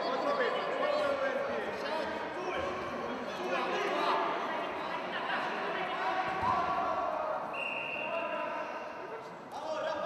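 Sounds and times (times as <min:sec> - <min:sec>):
voices calling out in hall: 0:00.0 - 0:10.0.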